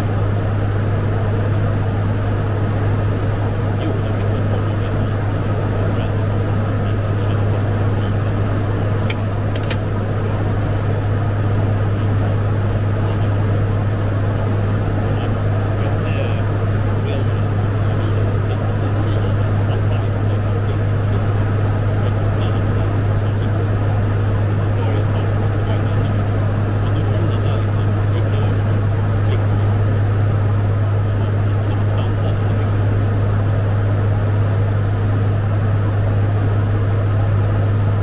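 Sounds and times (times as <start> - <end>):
deep propeller hum: 0.0 - 38.0
engine and airflow rush: 0.0 - 38.0.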